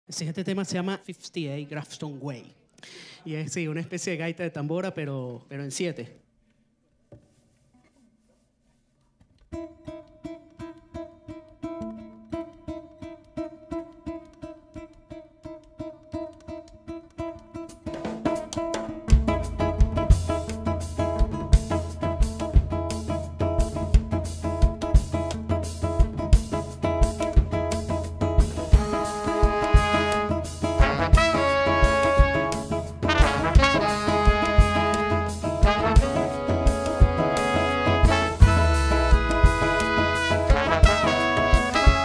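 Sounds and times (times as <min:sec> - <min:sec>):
cuatro strumming: 0:09.5 - 0:42.0
drum kit: 0:17.8 - 0:42.0
electric bass: 0:19.0 - 0:42.0.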